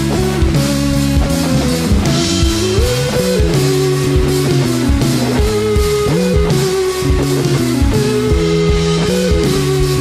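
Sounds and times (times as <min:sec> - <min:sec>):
drum kit: 0:00.0 - 0:10.0
electric guitar: 0:00.0 - 0:10.0.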